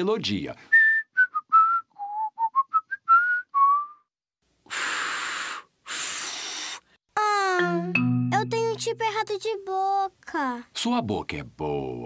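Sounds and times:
cartoon whistling tune: 0.8s - 4.1s
breathy blows of air: 4.7s - 7.0s.

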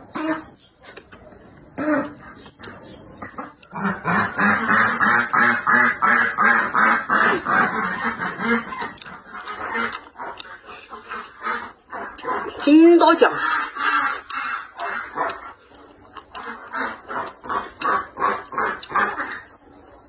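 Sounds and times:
ducks quacking: 0.0s - 0.6s, 1.7s - 20.0s.

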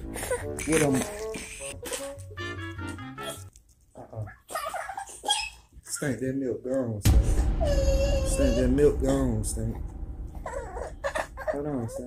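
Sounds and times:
toddler whining and crying: 7.6s - 8.7s.

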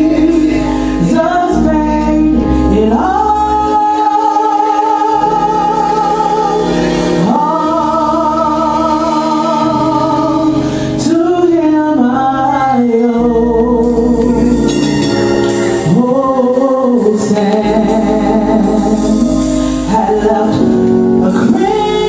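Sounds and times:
woman singing gospel into microphone: 0.0s - 15.1s, 15.8s - 22.0s
sustained instrumental chords: 0.0s - 22.0s.

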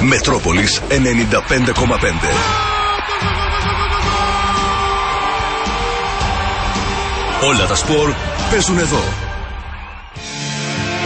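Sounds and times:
radio jingle music: 0.0s - 11.0s.

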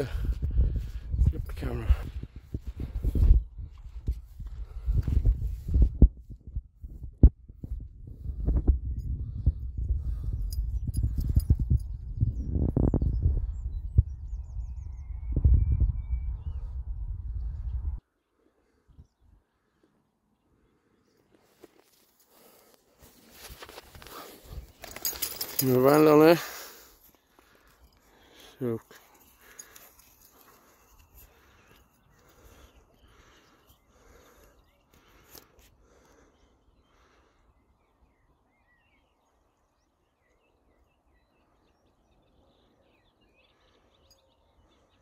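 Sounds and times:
wind buffeting microphone: 0.0s - 18.0s
faint bird chirps: 27.6s - 45.0s.

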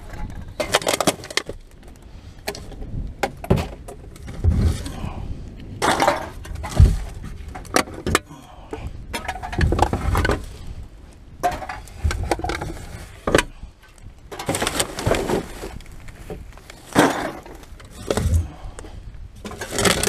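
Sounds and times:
plastic bags rustling: 14.3s - 18.3s.

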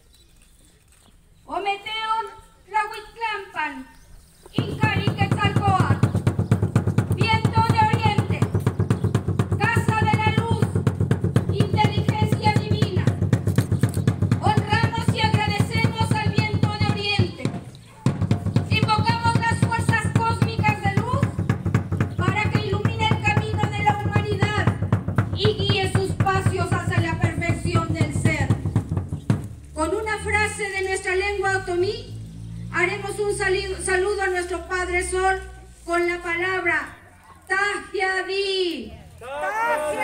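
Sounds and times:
drum roll on wooden drum: 4.6s - 29.6s.

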